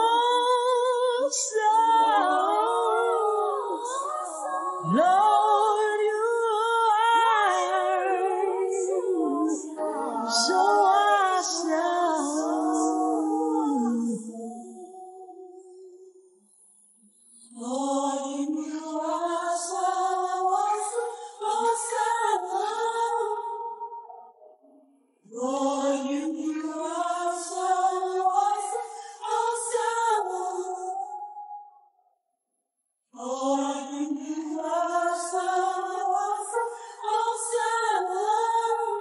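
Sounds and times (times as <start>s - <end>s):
unaccompanied gospel singing: 0.0s - 15.9s, 17.4s - 24.3s, 25.2s - 31.5s, 33.2s - 39.0s.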